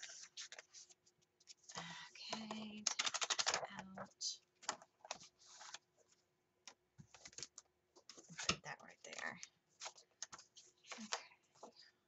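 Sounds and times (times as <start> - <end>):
paper rustling: 0.0 - 6.3, 7.0 - 11.9.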